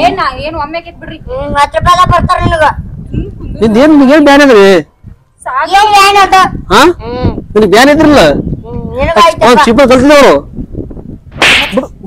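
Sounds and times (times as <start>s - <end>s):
sharp swish: 11.3s - 12.0s.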